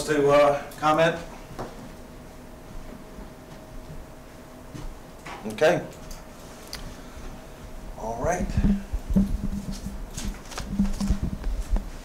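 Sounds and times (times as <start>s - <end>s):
dull knocks on microphone: 8.4s - 10.0s
paper rustles: 9.5s - 11.8s.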